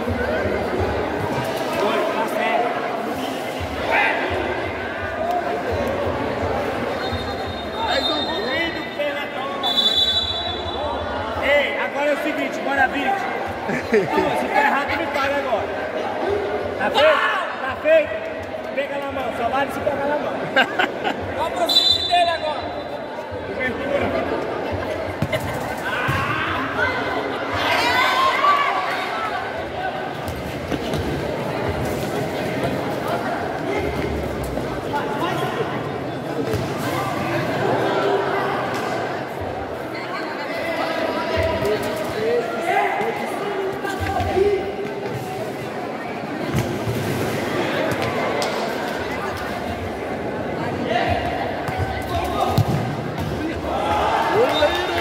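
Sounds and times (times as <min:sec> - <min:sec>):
crowd chattering and calling out: 0:00.0 - 0:55.0.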